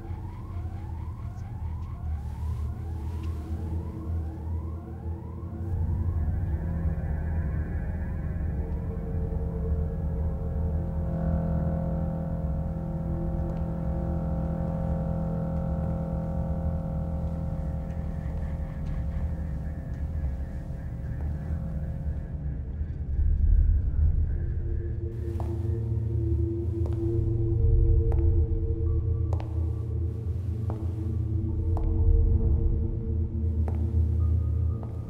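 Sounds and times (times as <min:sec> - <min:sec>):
dark droning horror score: 0:00.0 - 0:35.0.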